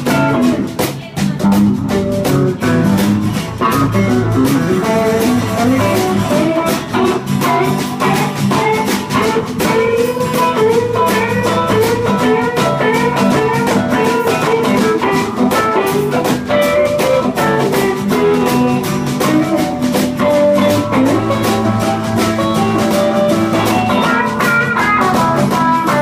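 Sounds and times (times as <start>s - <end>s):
acoustic rhythm guitar: 0.0s - 26.0s
drum kit beat: 0.0s - 26.0s
electric guitar lead: 0.0s - 26.0s.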